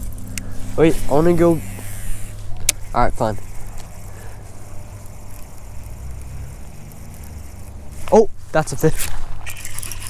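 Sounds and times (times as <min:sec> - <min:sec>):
faint hiss: 0:00.0 - 0:08.9
steady low rumble: 0:00.0 - 0:09.5.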